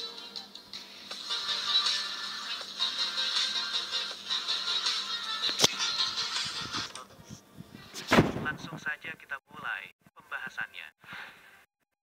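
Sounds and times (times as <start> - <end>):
loud impact boom: 8.1 - 8.8
voice speaking: 8.4 - 10.9.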